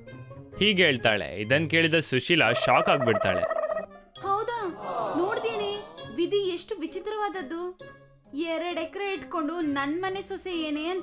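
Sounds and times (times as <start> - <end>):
woman speaking excitedly: 4.2 - 7.7.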